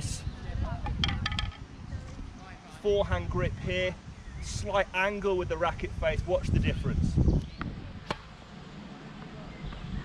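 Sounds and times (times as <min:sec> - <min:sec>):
outdoor wind noise: 0:00.0 - 0:10.0
tennis racket striking ball: 0:08.0 - 0:08.3.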